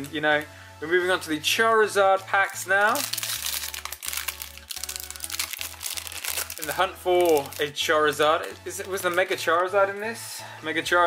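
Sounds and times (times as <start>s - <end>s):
background music with low notes: 0.0s - 11.0s
foil wrapper crinkling: 2.3s - 9.6s.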